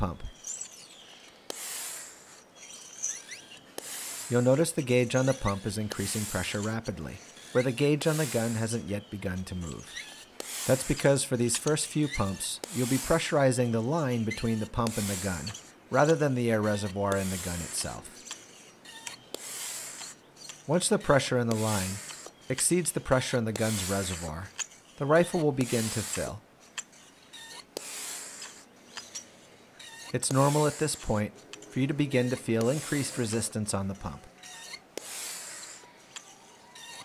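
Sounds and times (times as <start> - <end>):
pump shaft rubbing: 0.0 - 37.0
hand pump air hiss: 0.4 - 37.0.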